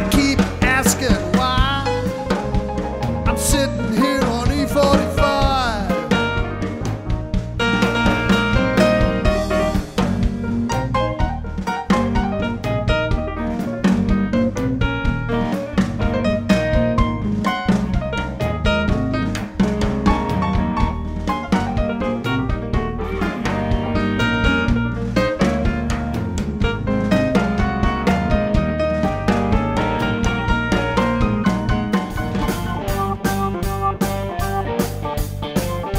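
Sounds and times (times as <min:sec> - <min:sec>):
drum kit steady beat: 0:00.0 - 0:35.9
electric guitar: 0:00.0 - 0:35.9
keyboard playing quick runs: 0:29.0 - 0:35.9.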